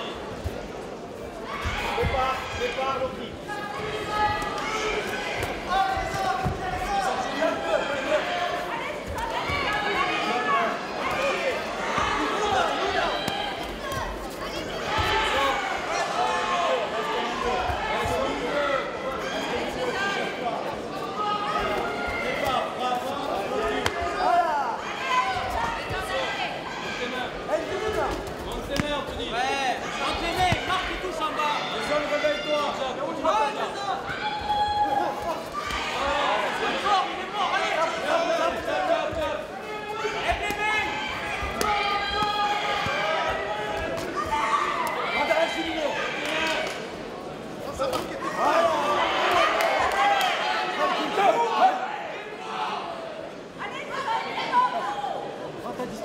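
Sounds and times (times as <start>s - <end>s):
voices shouting: 21.1s - 46.8s.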